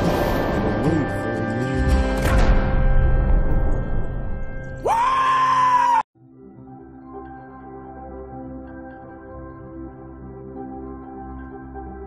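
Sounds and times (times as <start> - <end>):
film soundtrack music: 0.0 - 5.6, 6.2 - 12.0.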